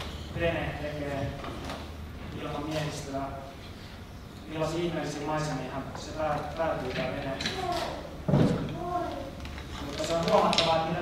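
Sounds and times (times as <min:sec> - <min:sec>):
man reading aloud: 0:00.0 - 0:03.7, 0:04.4 - 0:08.1, 0:08.7 - 0:11.0.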